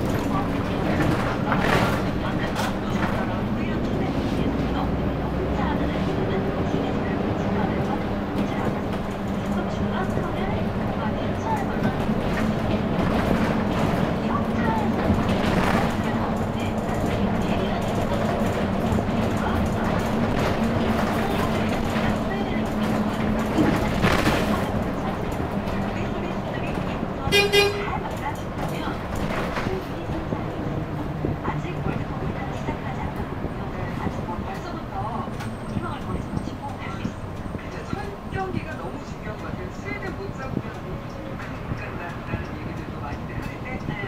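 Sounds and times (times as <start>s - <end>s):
bus engine hum: 0.0s - 44.0s
road noise: 0.0s - 44.0s.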